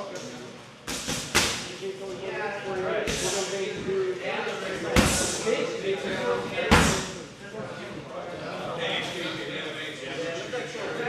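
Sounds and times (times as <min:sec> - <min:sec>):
strikes smacking pads: 0:00.9 - 0:01.7.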